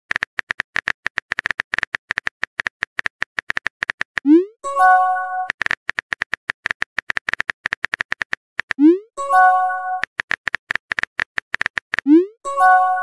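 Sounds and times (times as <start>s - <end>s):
phone keyboard typing clicks: 0.1s - 4.4s, 5.4s - 8.8s, 10.0s - 12.1s
message sent pop and chime: 4.3s - 5.5s, 8.8s - 10.0s, 12.4s - 13.0s.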